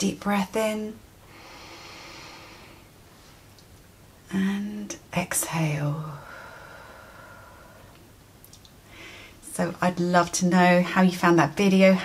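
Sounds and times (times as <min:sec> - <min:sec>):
woman breathing in deeply: 0:01.2 - 0:03.0, 0:06.2 - 0:08.0, 0:08.9 - 0:09.4.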